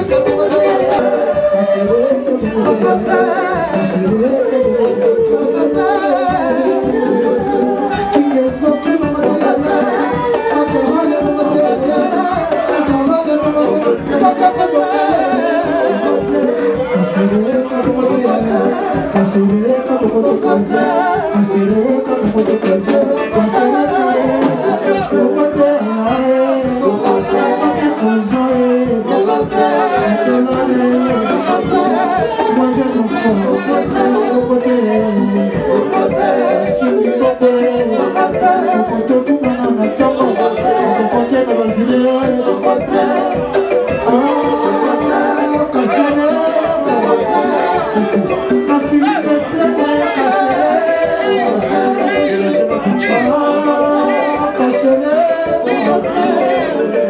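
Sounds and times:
live band music with drums: 0.0 - 57.0
man singing into a microphone: 0.0 - 57.0.

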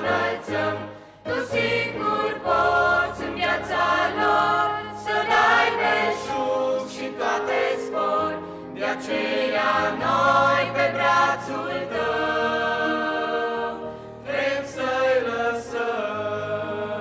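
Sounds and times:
choir singing in harmony: 0.0 - 17.0.

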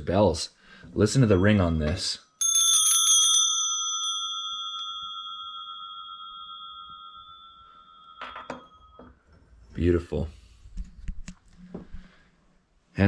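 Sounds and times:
metal bells ringing: 1.1 - 9.6.

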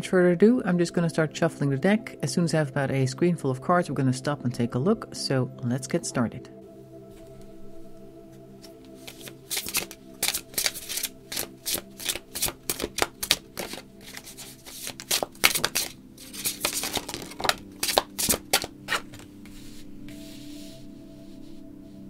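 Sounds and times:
ambient background music: 0.0 - 22.0
cards shuffling: 8.6 - 19.6.

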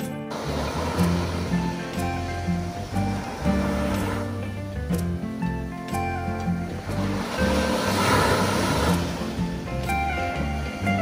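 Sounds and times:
background music with bass line: 0.0 - 11.0
sea waves breaking on beach: 0.3 - 11.0.

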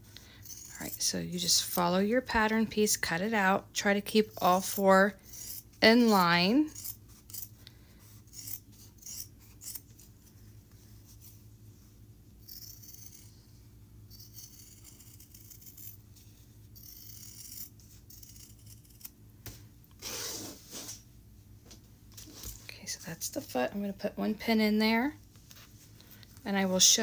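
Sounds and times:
faint steady hum: 0.0 - 27.0
scissors cutting fabric: 4.4 - 7.5, 8.2 - 10.1, 12.4 - 13.3, 14.1 - 16.0, 16.8 - 19.2.

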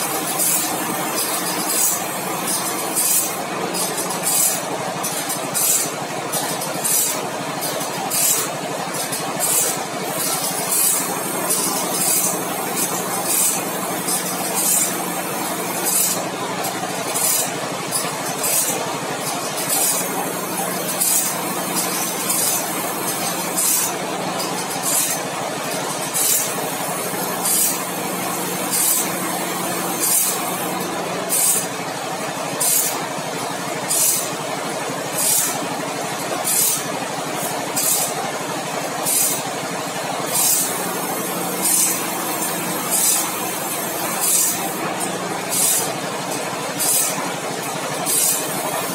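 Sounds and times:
grinding wheel hiss: 0.0 - 5.9, 6.8 - 7.2, 8.1 - 18.8, 19.4 - 25.2, 26.0 - 31.7, 32.6 - 33.0, 33.9 - 34.3, 35.1 - 35.6, 36.4 - 36.8, 37.7 - 38.2, 39.0 - 39.4, 40.2 - 45.9, 46.8 - 47.2, 48.0 - 48.9
machine running steadily: 0.0 - 48.9.

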